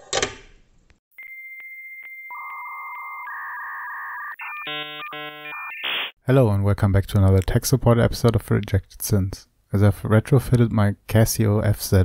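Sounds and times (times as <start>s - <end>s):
electronic beep tones: 1.2s - 6.2s.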